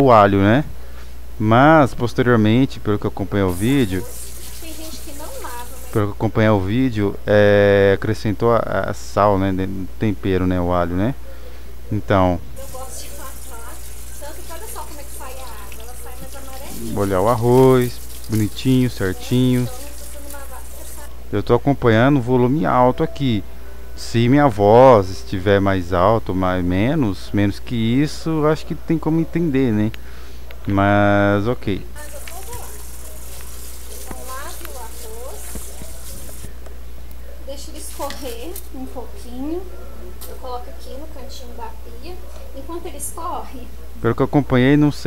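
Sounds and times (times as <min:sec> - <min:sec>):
low electrical hum: 0:00.0 - 0:45.0
tap water running onto rice: 0:03.5 - 0:06.0, 0:12.6 - 0:21.1, 0:32.0 - 0:36.5.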